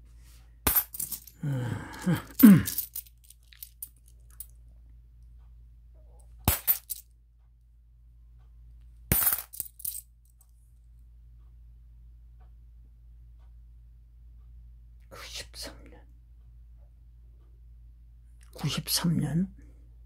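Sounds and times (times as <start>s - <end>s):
coins clinking: 0.7s - 1.4s, 2.0s - 3.9s, 6.5s - 7.0s, 9.1s - 10.0s.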